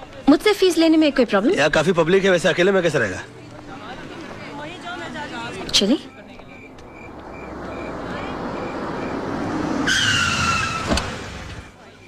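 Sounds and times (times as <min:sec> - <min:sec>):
car tyres squealing: 0:06.4 - 0:11.7.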